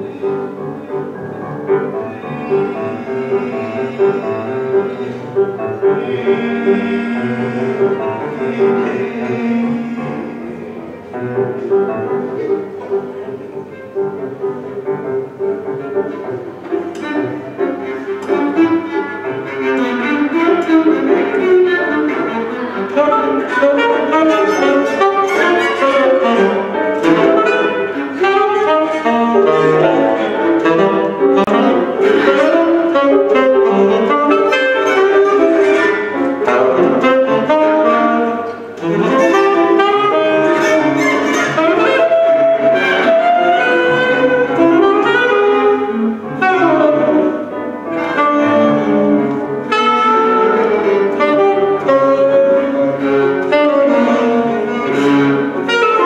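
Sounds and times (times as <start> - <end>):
grand piano: 0.0 - 56.0
saxophone: 0.0 - 56.0
viola: 0.0 - 56.0.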